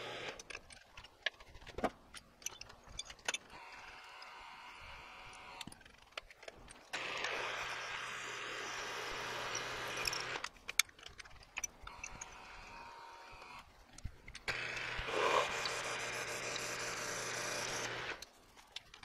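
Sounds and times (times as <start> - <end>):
milling machine drilling metal: 7.0 - 10.4, 14.5 - 18.2
clicks and knocks of drill chuck: 9.5 - 12.6.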